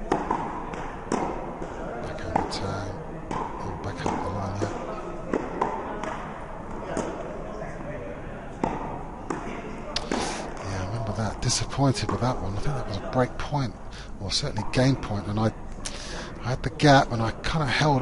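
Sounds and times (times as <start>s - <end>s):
tennis ball pops echoing: 0.0s - 1.7s, 3.3s - 7.2s.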